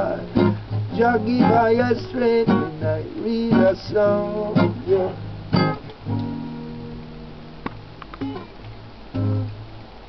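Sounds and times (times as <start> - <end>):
acoustic guitar strumming: 0.0 - 9.9
guitar plucks: 0.0 - 9.9.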